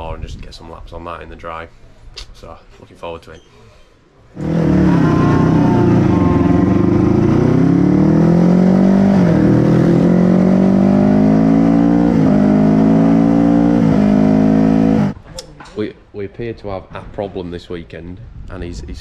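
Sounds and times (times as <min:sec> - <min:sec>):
racing motorcycle engine: 0:04.4 - 0:15.2.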